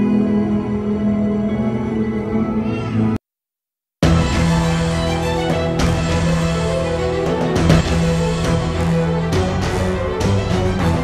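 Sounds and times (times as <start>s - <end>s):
background music with low notes: 4.0s - 11.0s.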